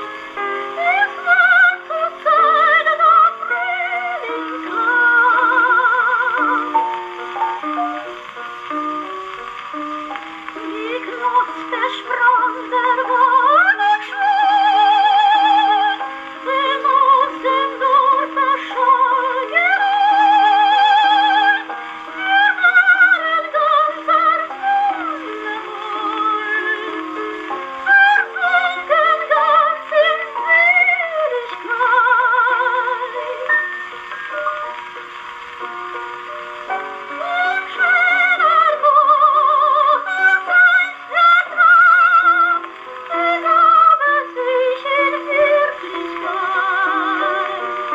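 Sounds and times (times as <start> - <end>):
phonograph song with vibrato singing: 0.0 - 47.9.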